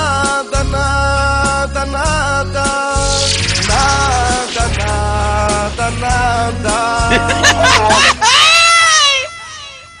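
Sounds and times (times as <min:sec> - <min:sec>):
high-pitched crying wail: 0:07.7 - 0:10.0.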